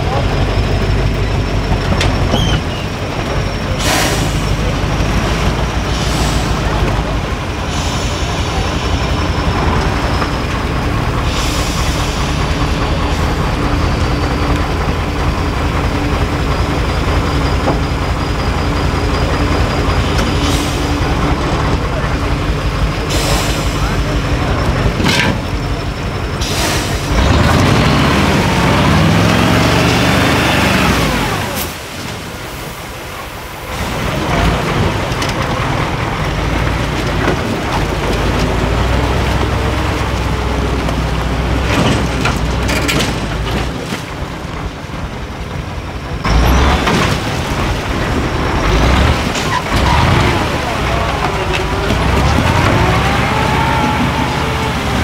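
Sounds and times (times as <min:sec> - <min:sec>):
diesel engine under heavy load: 0:00.0 - 0:55.0.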